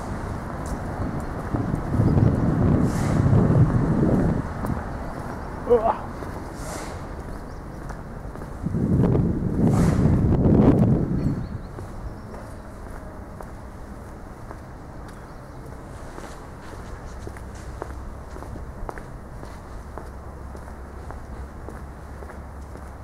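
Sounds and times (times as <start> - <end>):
loud low rumbling: 0.0 - 15.9
footsteps on paving stones: 0.1 - 9.7, 10.6 - 23.0.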